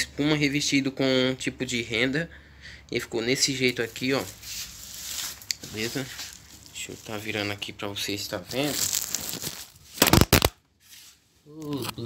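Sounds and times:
phone handling rubbing and rustling: 8.6 - 10.5.

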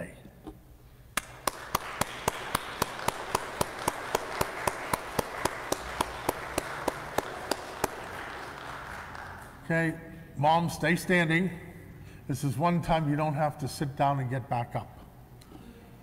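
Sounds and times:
loud single claps: 1.1 - 9.6
crowd applauding: 1.2 - 9.7.

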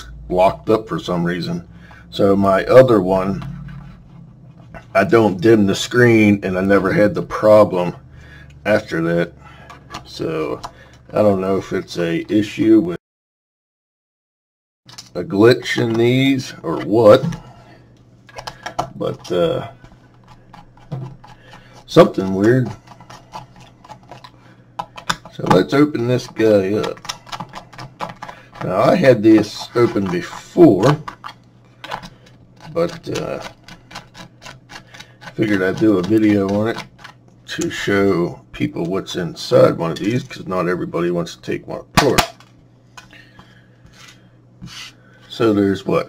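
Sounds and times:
plastic housing clicking and tapping: 24.1 - 25.6
plastic housing rubbing on mat: 43.9 - 45.0.

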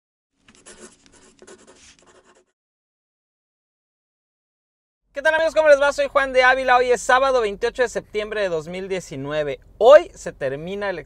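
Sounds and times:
pen scratching on paper: 0.4 - 2.6.

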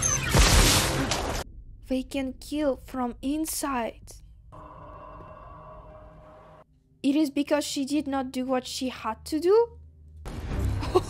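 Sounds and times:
film score drone: 2.8 - 6.7.

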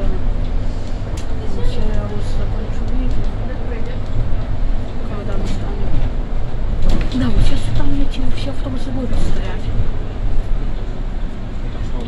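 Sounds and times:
people talking indistinctly: 0.0 - 10.6
bus rumbling: 0.0 - 12.0.

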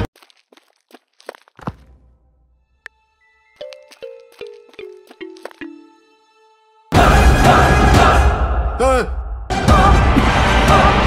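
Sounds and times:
music: 2.5 - 11.0.

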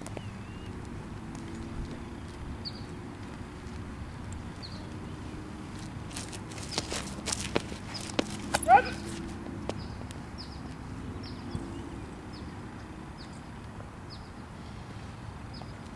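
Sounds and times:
shoes scuffing on concrete: 0.0 - 10.8.

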